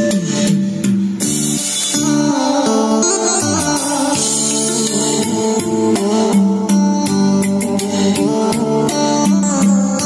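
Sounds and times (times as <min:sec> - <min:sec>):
music through speakers: 0:00.0 - 0:10.0.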